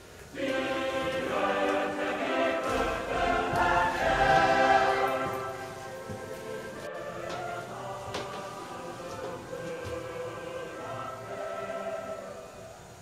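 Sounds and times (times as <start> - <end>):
choir singing held chords: 0.0 - 13.0.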